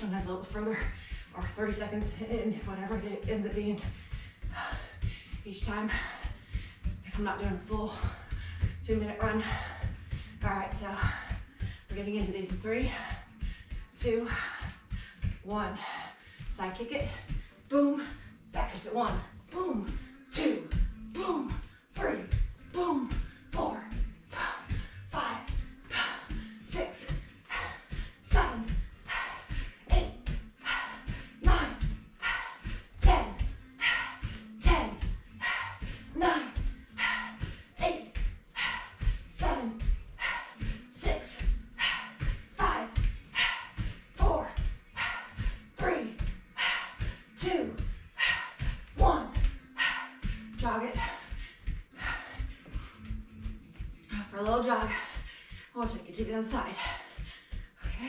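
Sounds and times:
bare feet thudding on mat: 0:00.0 - 0:58.0.

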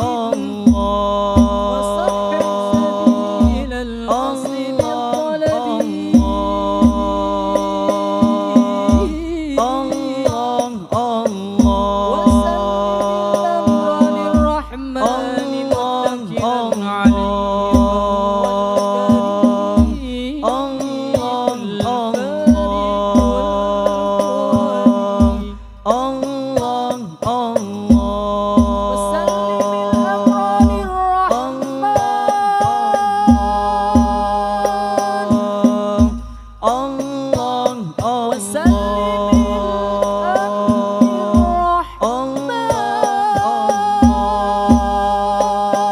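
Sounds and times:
frame drums: 0:00.0 - 0:45.9
two men singing together: 0:00.0 - 0:45.9.

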